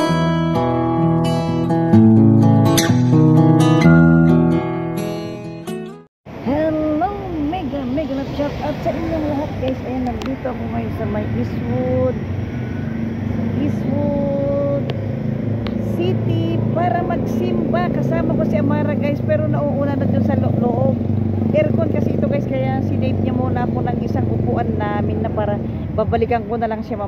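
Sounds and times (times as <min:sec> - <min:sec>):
vehicle engine humming: 0:06.3 - 0:27.0
people talking: 0:06.5 - 0:12.2, 0:13.6 - 0:14.8, 0:15.8 - 0:27.0.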